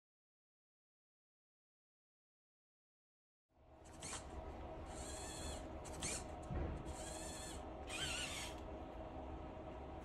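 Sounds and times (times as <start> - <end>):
servo motors whining: 3.8 - 8.7.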